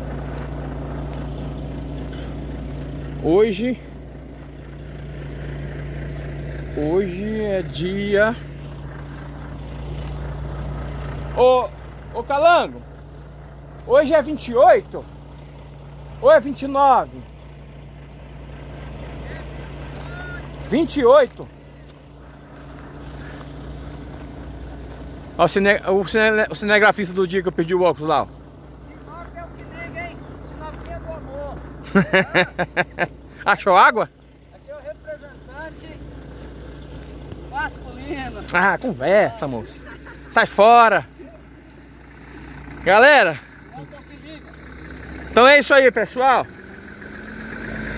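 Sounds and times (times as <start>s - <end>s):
low hum: 0.0s - 33.4s
diesel truck engine idling: 0.0s - 47.9s
distant voices talking: 1.4s - 32.1s.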